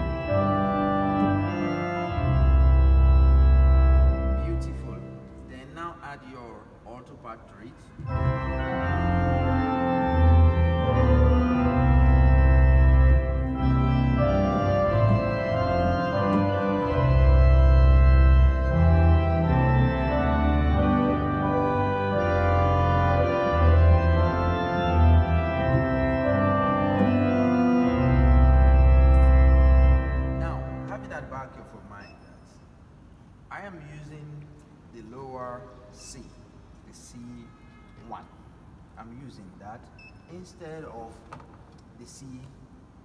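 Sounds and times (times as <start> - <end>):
church organ playing: 0.0 - 6.3, 7.2 - 32.2.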